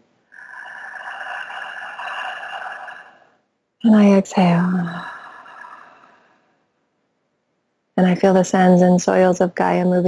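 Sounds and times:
woman breathing in deeply: 5.0s - 6.6s.

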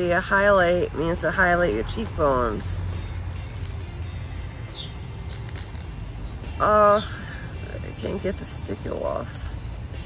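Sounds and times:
bird chirp: 2.9s - 8.4s.

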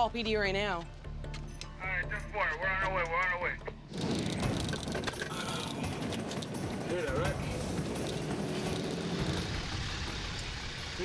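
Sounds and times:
street traffic noise: 4.8s - 11.0s.

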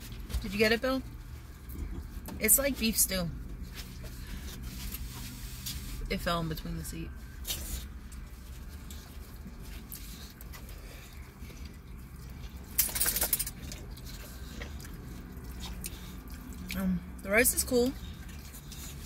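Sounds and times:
low hum in car cabin: 0.0s - 19.0s.

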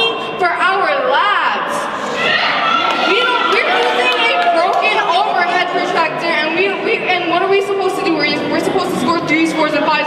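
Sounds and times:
young woman speaking: 0.0s - 2.0s, 3.0s - 10.0s.

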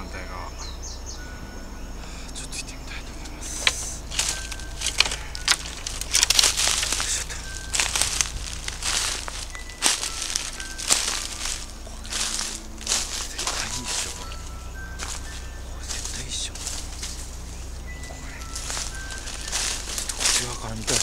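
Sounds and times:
footsteps crunching through dry leaves: 3.0s - 21.0s.

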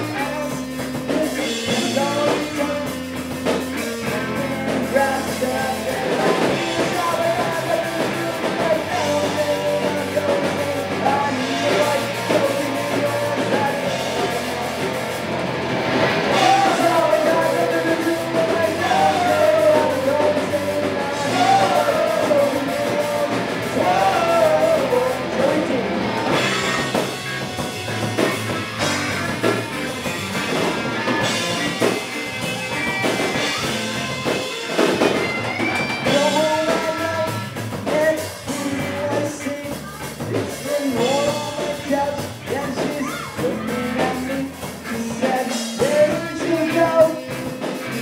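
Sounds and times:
drum kit: 0.0s - 48.0s
electric guitars: 0.0s - 48.0s
rock band playing: 0.0s - 48.0s.

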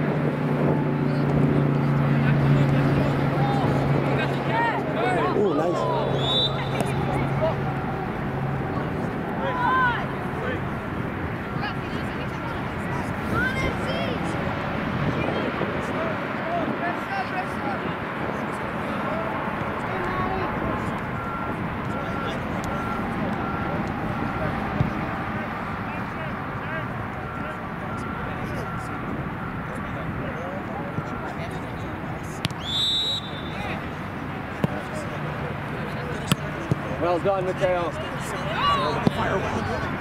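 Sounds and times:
referee's whistle blown: 6.0s - 7.2s, 32.6s - 33.8s.

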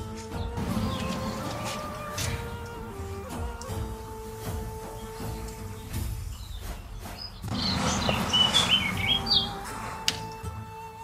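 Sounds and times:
soft background music: 0.0s - 11.0s
bird chirping: 0.3s - 10.4s.

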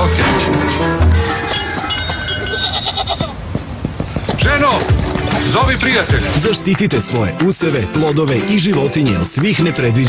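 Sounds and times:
farm animal calling: 0.8s - 3.5s.

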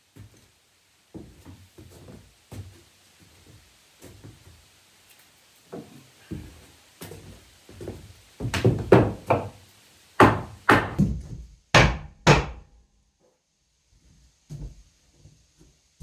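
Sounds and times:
hatchet hammering on wood: 8.5s - 9.6s, 10.2s - 12.7s.

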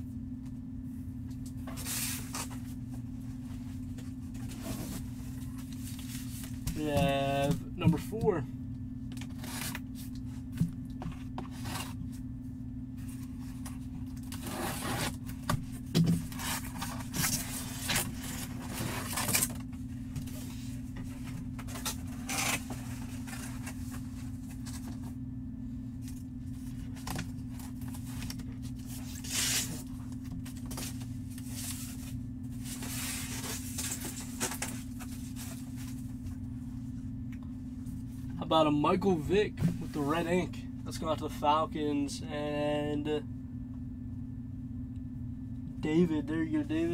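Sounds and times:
steady low hum: 0.0s - 46.9s
cardboard scraping and rustling: 1.6s - 2.8s, 4.3s - 8.1s, 11.0s - 12.0s, 13.1s - 25.1s, 26.0s - 36.1s.

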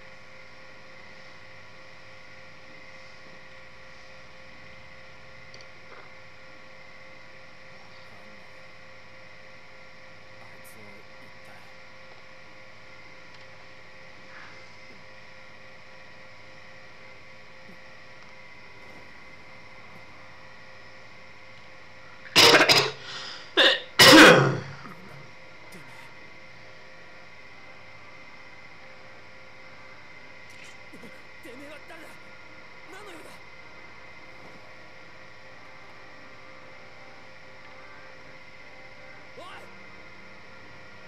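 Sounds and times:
faint electrical hum: 0.0s - 41.0s
man coughing: 23.6s - 25.2s.

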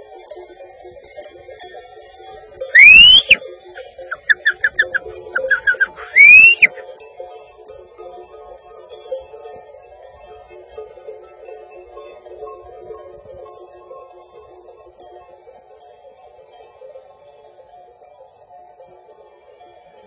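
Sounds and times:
person whistling sharply: 2.8s - 3.4s, 4.1s - 6.8s
short high whistled chirps: 2.8s - 3.4s, 4.1s - 6.8s.

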